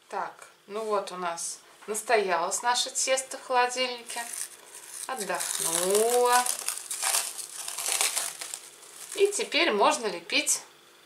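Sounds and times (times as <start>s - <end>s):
cling film crinkling: 4.0s - 9.6s.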